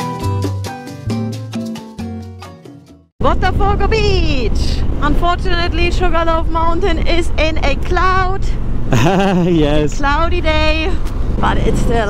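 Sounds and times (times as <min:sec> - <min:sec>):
person's voice: 0:03.2 - 0:10.8
motorcycle engine: 0:03.2 - 0:12.0
wind rumble: 0:03.2 - 0:12.0.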